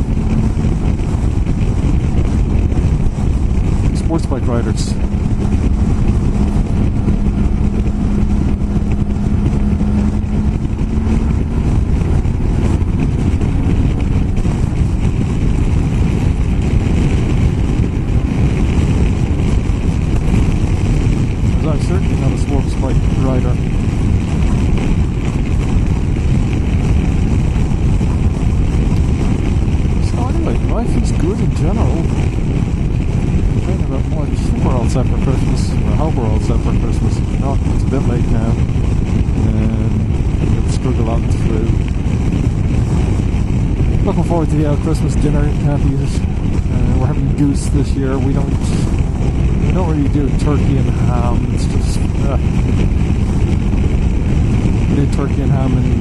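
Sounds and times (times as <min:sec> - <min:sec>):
motorcycle engine cruising: 0:00.0 - 0:56.0
wind rush on microphone: 0:00.0 - 0:56.0.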